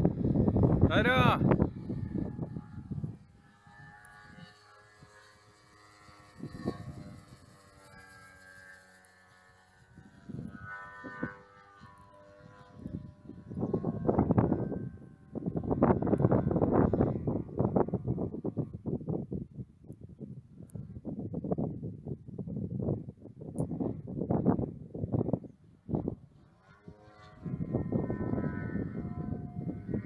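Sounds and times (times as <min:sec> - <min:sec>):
wind gusts on microphone: 0:00.0 - 0:08.4, 0:09.8 - 0:30.0
distant model plane engine drone: 0:00.0 - 0:30.0.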